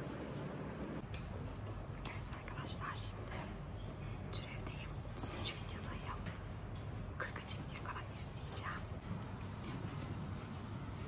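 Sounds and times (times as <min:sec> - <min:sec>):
woman whispering: 0:01.9 - 0:03.6, 0:04.3 - 0:09.0.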